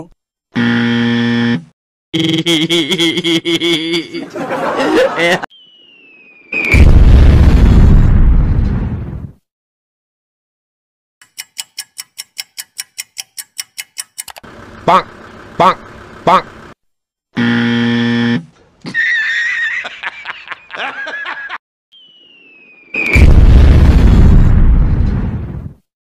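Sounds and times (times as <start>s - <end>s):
wrong answer buzzer: 0.6s - 4.0s, 17.4s - 18.5s
hearty laughter: 2.5s - 5.5s, 18.8s - 21.6s
falling whistle: 5.5s - 7.0s, 21.9s - 23.3s
loud blast: 6.6s - 9.3s, 23.0s - 25.8s
rapid countdown ticking: 11.2s - 16.5s.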